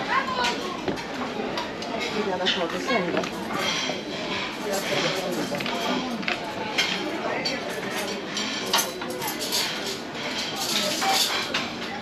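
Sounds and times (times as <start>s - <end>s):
chatter of many people: 0.0s - 12.0s
dishes and cutlery clinking: 0.4s - 12.0s.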